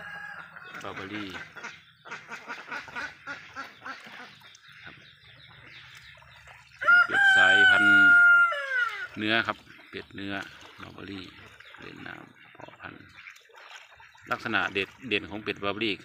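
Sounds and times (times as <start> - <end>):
rooster crowing: 0.0 - 0.6, 6.8 - 9.1
poultry clucking: 0.0 - 16.0.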